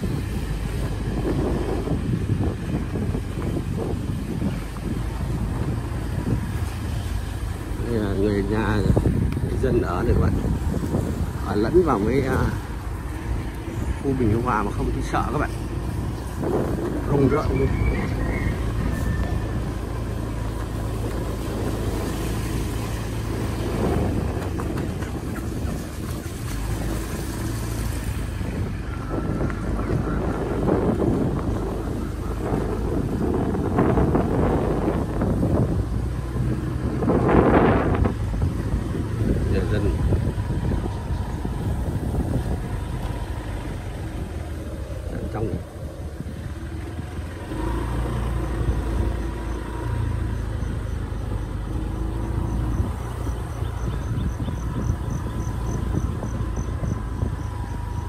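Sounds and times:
vehicle engine running: 0.0 - 58.0
wind rushing on microphone: 0.0 - 58.0.

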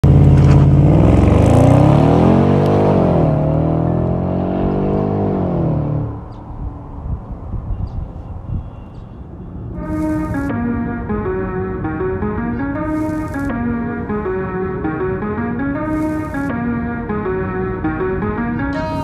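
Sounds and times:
car engine pulling away hard: 0.0 - 6.2.

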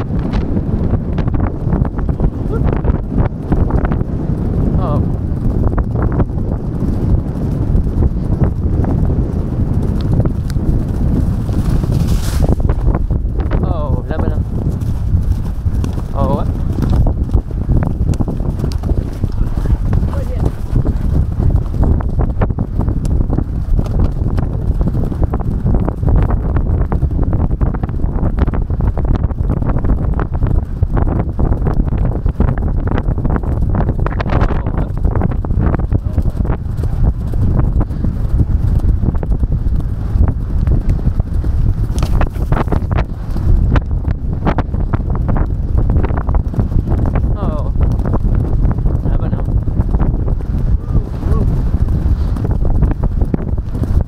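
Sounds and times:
horse hoofbeats galloping on grass: 0.0 - 54.0
low wind rumble on microphone: 0.0 - 54.0.

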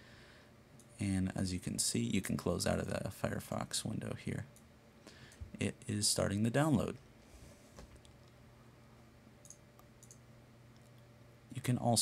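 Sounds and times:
faint steady hum: 0.0 - 12.0
computer mouse clicks: 9.4 - 10.2.

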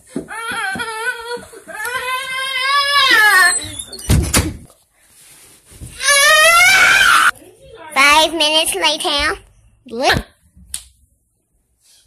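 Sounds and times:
child wailing: 0.3 - 3.7, 6.0 - 7.3.

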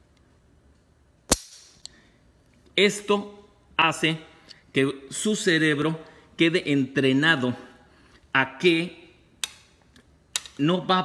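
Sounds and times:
pistol hammer clicking: 1.3 - 1.9, 10.3 - 10.6.

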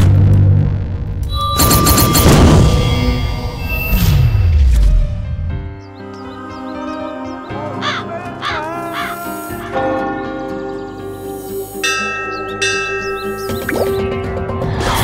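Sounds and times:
film score held tones: 0.0 - 15.0
crows cawing: 6.0 - 10.0
bell ringing: 11.8 - 13.7.

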